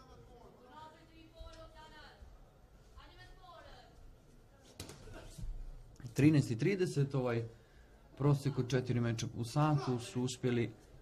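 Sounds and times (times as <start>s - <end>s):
boxing hall ambience: 0.0s - 8.6s.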